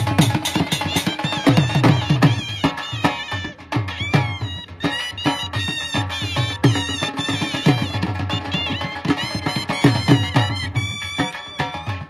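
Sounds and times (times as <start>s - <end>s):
dhol drum strokes: 0.0s - 12.0s
shehnai wavering melody: 0.0s - 12.0s.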